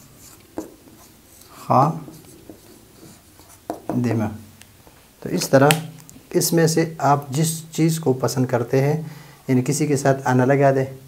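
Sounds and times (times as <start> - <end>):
marker pen writing on whiteboard: 0.0 - 4.2.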